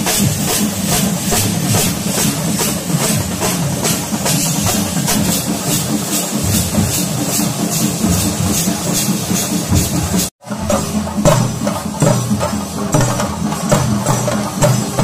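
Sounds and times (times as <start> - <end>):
drums beating fast: 0.0 - 15.0.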